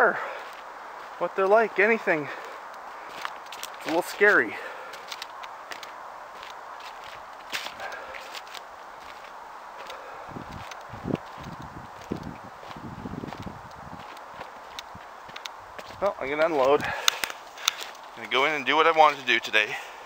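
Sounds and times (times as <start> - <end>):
footsteps on rough ground: 0.0 - 20.0
steady background hiss: 0.0 - 20.0.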